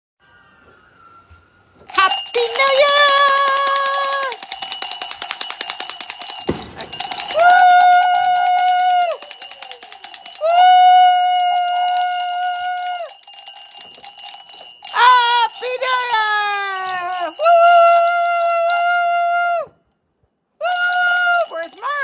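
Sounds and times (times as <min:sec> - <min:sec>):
fast even rattle: 0:01.9 - 0:18.8, 0:21.2 - 0:22.0.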